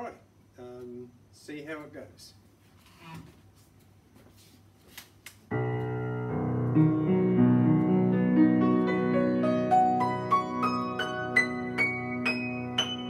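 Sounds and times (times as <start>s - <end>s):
piano chord: 5.5s - 13.0s
piano notes climbing: 5.5s - 13.0s.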